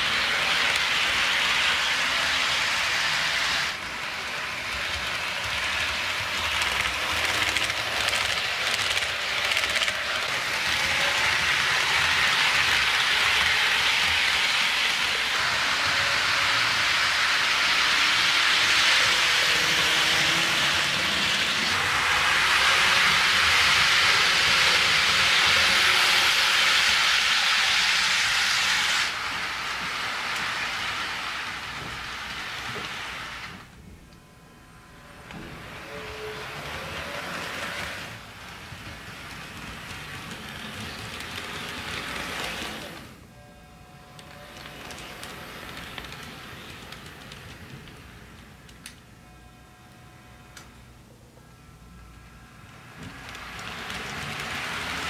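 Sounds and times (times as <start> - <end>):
model train wheels on rails: 0.0 - 55.0.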